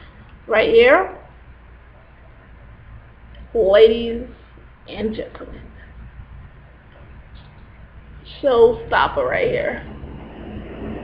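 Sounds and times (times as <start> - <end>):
faint steady hiss: 0.0 - 11.0
low hum: 0.0 - 11.0.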